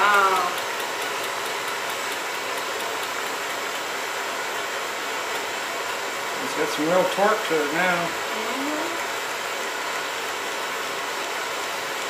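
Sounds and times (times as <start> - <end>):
blowtorch flame hissing: 0.0 - 12.0.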